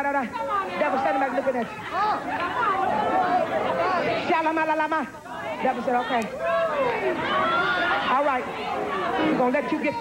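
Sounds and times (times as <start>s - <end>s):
overlapping voices: 0.0s - 10.0s.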